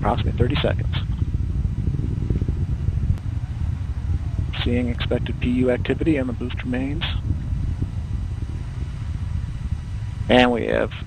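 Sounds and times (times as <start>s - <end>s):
rocket rumble: 0.0s - 11.0s.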